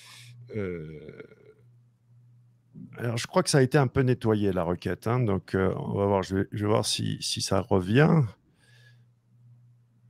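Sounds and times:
man speaking: 0.0 - 1.4, 2.8 - 8.4
man's drawn-out hesitation: 0.0 - 1.5
low room hum: 0.0 - 10.0.

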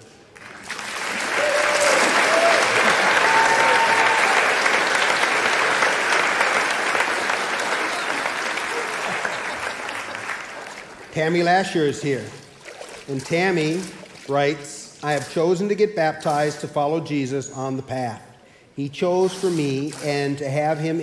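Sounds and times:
crowd applauding: 0.3 - 11.4.

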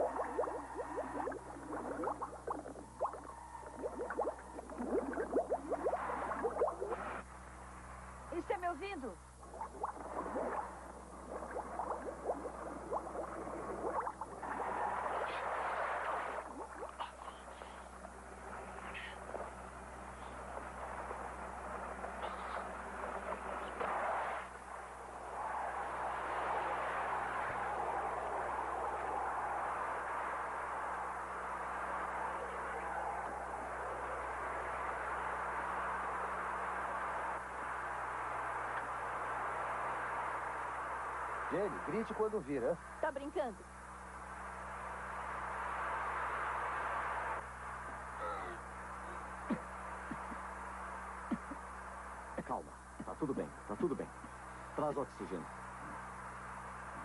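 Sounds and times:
water bubbling and splashing: 0.0 - 7.2, 9.4 - 17.2
water rushing: 0.0 - 7.2, 9.4 - 17.1
faint low hum: 0.0 - 57.0.

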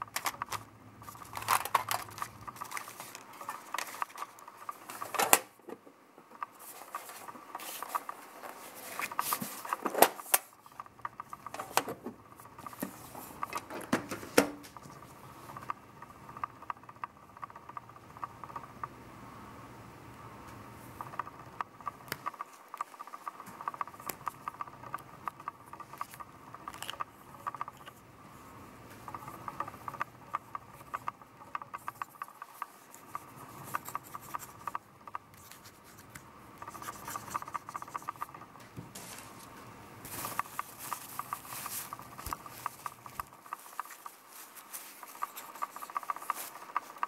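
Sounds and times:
pen clicking and tapping: 23.5 - 28.0, 29.1 - 38.5, 40.2 - 44.2, 44.8 - 47.0.

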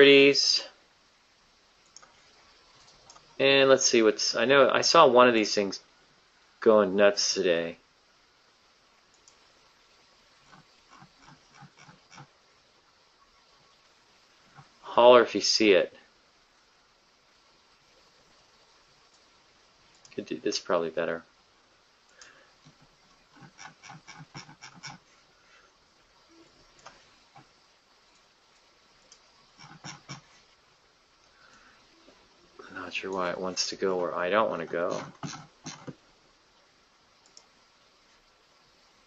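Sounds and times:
faint keyboard or mouse clicks: 37.2 - 37.5.

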